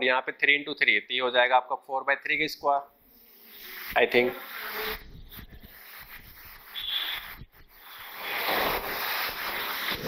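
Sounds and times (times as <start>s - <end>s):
marker squeak: 3.4s - 10.0s
marker pen scratching on whiteboard: 3.5s - 10.0s.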